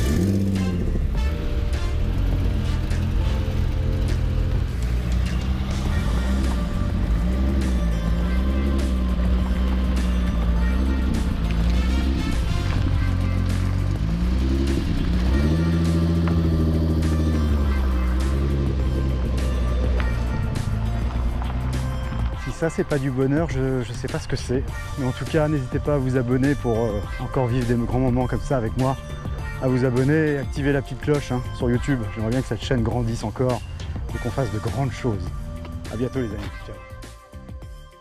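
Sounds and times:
car engine revving: 0:00.0 - 0:34.7
background music with beat: 0:00.0 - 0:38.0.

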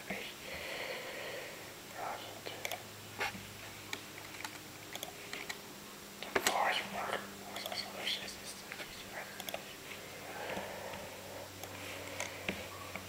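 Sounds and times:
person whispering: 0:00.0 - 0:00.5, 0:01.9 - 0:02.8, 0:06.2 - 0:11.5.

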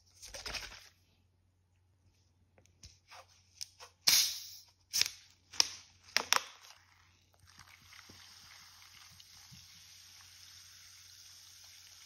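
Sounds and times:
fizzing soda pouring: 0:06.8 - 0:12.0.

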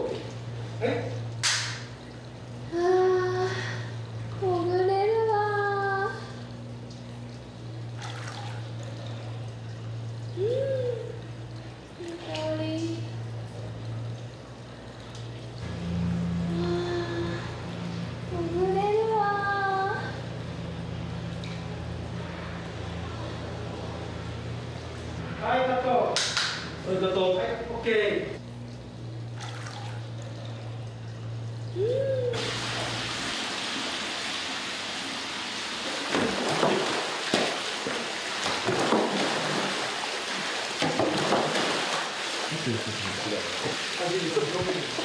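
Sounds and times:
low steady hum: 0:00.0 - 0:45.0
bathwater splash: 0:07.9 - 0:09.2, 0:29.3 - 0:30.6, 0:32.4 - 0:45.0.

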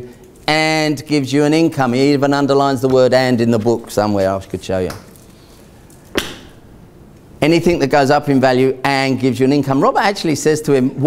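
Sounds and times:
sharp knock: 0:06.2 - 0:06.6.

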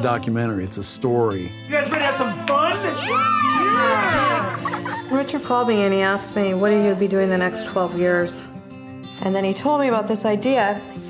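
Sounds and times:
man speaking: 0:00.0 - 0:03.0
guitar background music: 0:00.0 - 0:11.0
children shouting yay: 0:02.0 - 0:04.8.

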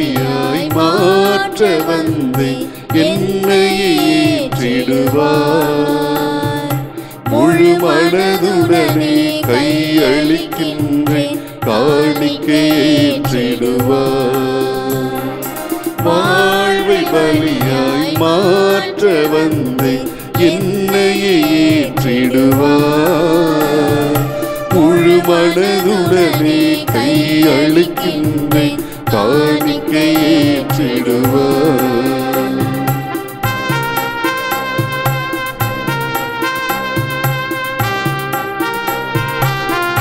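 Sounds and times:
person singing devotional hymn: 0:00.0 - 0:33.2
instrumental accompaniment: 0:00.0 - 0:40.0
light percussion: 0:00.0 - 0:40.0.

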